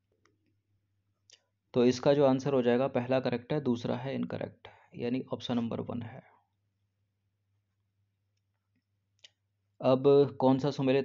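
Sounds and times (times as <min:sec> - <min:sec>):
man speaking: 0:01.8 - 0:06.3, 0:09.8 - 0:11.0.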